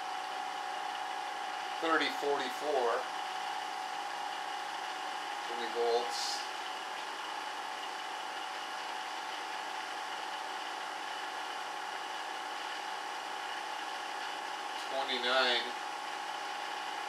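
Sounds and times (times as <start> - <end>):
motor whine: 0.0 - 17.0.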